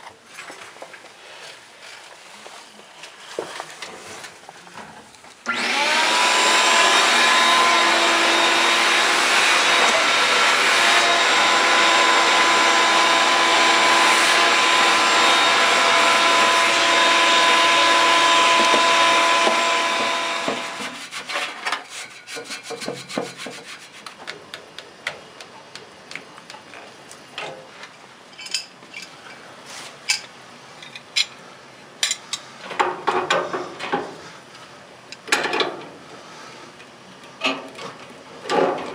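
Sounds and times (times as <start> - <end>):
vacuum cleaner running: 5.4 - 21.0.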